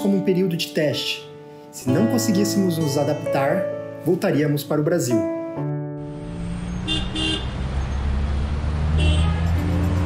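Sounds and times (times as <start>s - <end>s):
road traffic rumble: 6.0s - 10.0s
vehicle horn toots: 6.8s - 7.6s, 8.9s - 9.8s.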